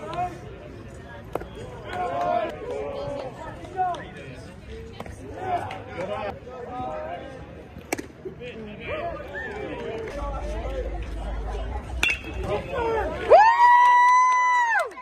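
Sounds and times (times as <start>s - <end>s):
crowd talking and calling out: 0.0s - 15.0s.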